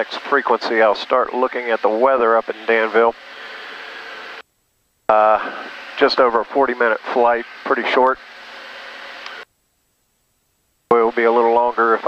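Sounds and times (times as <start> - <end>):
aircraft cabin engine drone: 0.0 - 4.4, 5.1 - 9.5
person speaking: 5.1 - 8.0.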